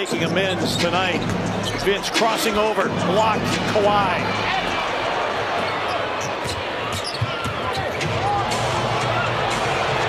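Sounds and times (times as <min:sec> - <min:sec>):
arena crowd noise: 0:00.0 - 0:10.0
sneaker squeaks: 0:01.0 - 0:01.9, 0:05.6 - 0:08.1.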